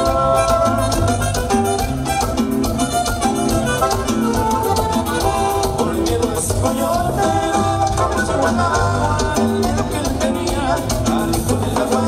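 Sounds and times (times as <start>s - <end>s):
band playing latin dance music: 0.0s - 12.0s.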